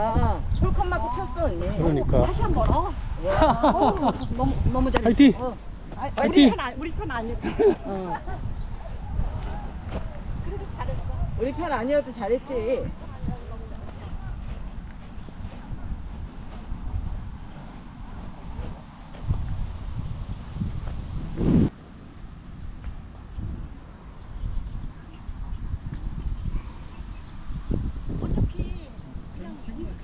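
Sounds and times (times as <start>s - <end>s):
wind rumbling on microphone: 0.0s - 30.0s.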